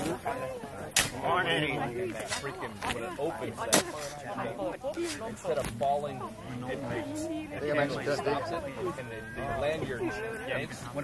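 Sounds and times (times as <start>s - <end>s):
voices talking: 0.0s - 11.0s
metal shovel striking stony earth: 0.9s - 1.4s, 2.2s - 3.0s, 3.6s - 4.1s.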